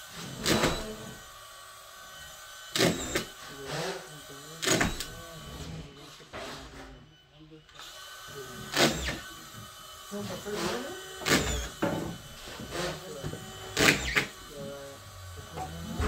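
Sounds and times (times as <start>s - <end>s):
low voices: 8.4s - 16.0s.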